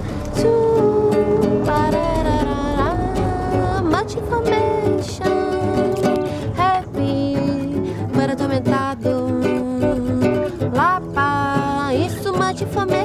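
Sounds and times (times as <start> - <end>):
acoustic guitar playing: 0.0 - 13.0
sliding sustained melody line: 0.0 - 13.0.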